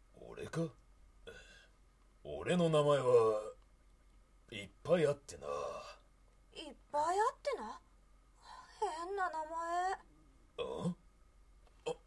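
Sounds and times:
gruff throat-clearing grunt: 0:10.6 - 0:11.0, 0:11.8 - 0:12.0.

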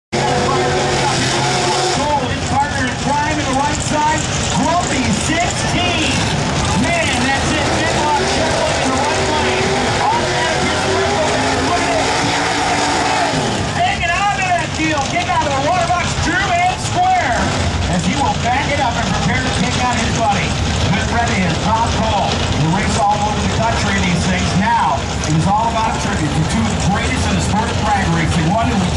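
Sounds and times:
drag car engines roaring: 0:00.1 - 0:28.9
announcer over loudspeaker: 0:00.2 - 0:28.9.

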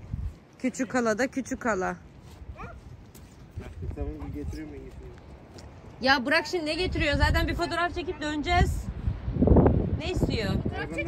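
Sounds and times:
wind noise on microphone: 0:00.0 - 0:00.5, 0:02.3 - 0:11.0.

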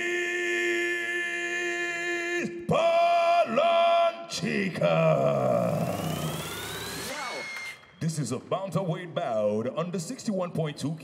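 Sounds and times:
rising electronic tone: 0:05.1 - 0:08.0.

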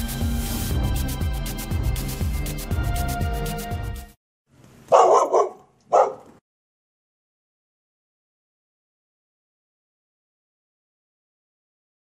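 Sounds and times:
dog barks: 0:04.9 - 0:06.4.

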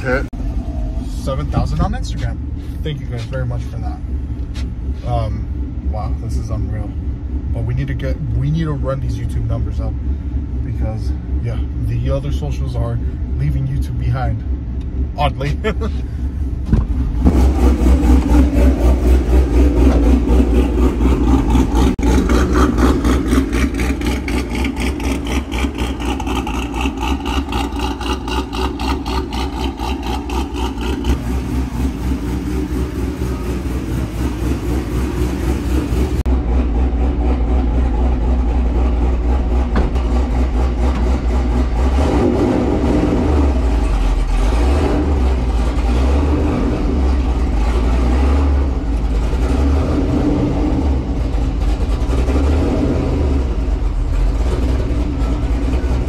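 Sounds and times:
engine idling with choppy lope: 0:00.0 - 0:56.0.

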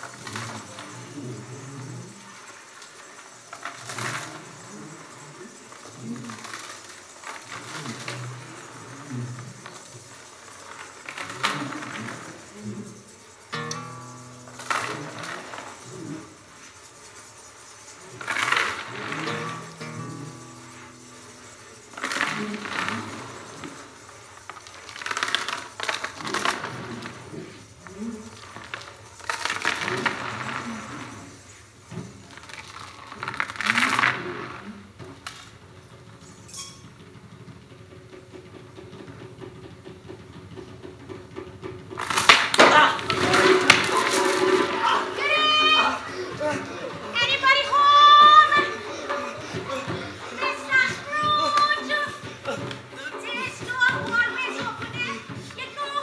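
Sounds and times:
heavy chain rattling on wooden floor: 0:00.0 - 0:56.0
crowd noise: 0:42.6 - 0:56.0.

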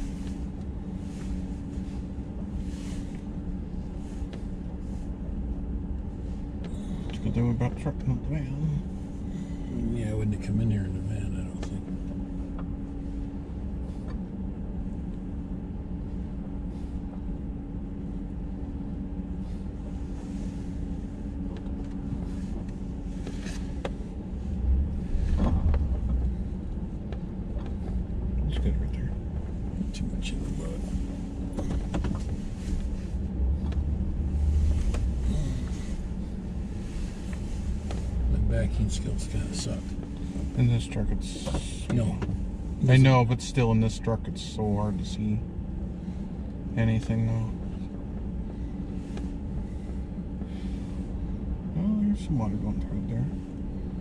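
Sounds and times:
truck engine running: 0:00.0 - 0:54.0
tyres rumbling on muddy road: 0:06.8 - 0:12.0, 0:24.5 - 0:45.4.

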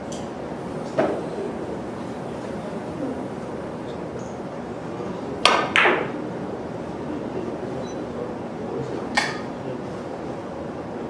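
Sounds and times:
cue tip striking ball: 0:05.4 - 0:06.2.

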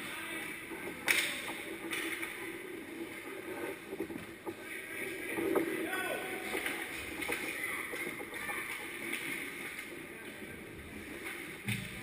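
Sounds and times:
steady rink hum: 0:00.0 - 0:12.0.

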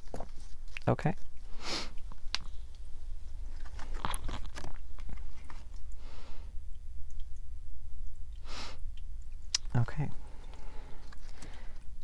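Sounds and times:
cards being shuffled: 0:03.4 - 0:05.6.

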